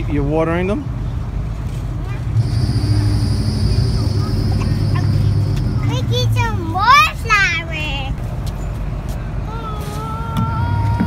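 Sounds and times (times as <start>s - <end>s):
motor humming with high whine: 2.4s - 6.4s.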